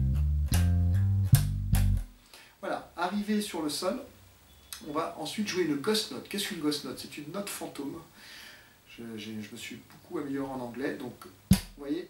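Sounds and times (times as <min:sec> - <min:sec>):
slap bass notes: 0:00.0 - 0:02.2.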